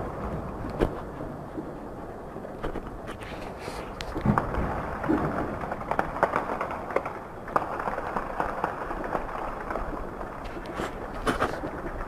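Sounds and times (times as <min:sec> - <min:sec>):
steady background rumble: 0:00.0 - 0:12.0.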